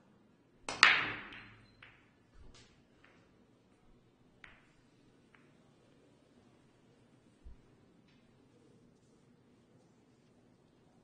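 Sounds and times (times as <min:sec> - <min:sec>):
cue ball cracking into racked balls: 0:00.6 - 0:03.4, 0:04.4 - 0:05.7
billiard balls clattering: 0:00.7 - 0:03.4, 0:04.4 - 0:05.7.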